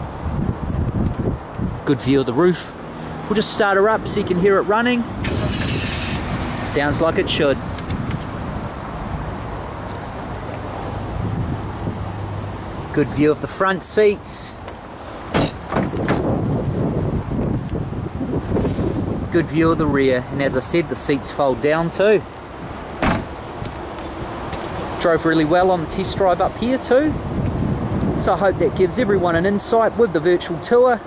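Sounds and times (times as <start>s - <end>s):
high-pitched hiss: 0.0s - 31.0s
car engine idling: 2.8s - 10.8s, 22.2s - 25.1s
car door shutting thump: 14.7s - 16.4s, 23.0s - 23.8s.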